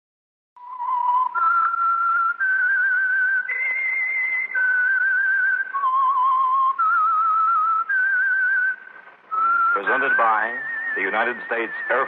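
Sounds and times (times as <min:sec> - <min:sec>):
person whistling a melody: 0:00.6 - 0:12.0.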